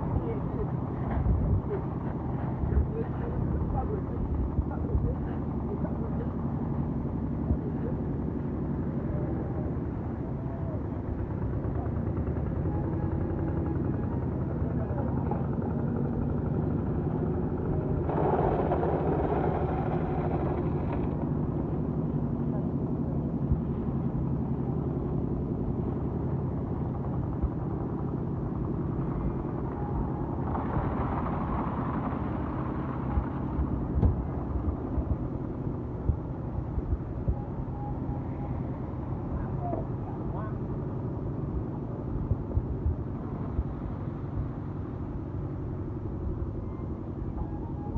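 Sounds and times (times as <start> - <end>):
wind buffeting microphone: 0.0 - 24.2, 24.8 - 47.9.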